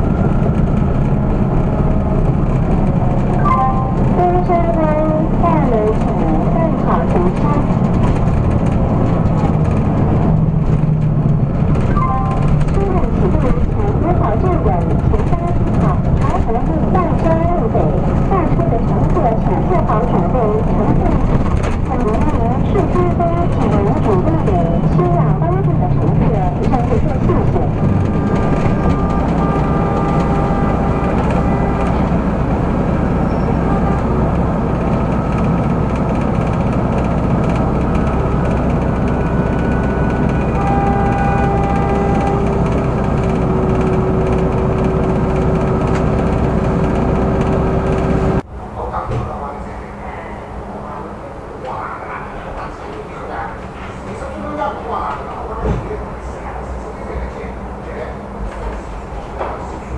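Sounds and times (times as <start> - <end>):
bus engine hum: 0.0 - 59.9
road noise: 0.0 - 59.9
tram cabin running hum: 0.0 - 59.9
indistinct voices: 3.3 - 10.2, 11.8 - 36.0, 48.6 - 59.9.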